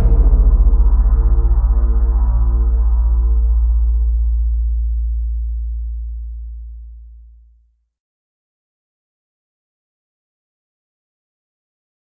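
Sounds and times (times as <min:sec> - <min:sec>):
deep electronic bass tone: 0:00.0 - 0:07.5.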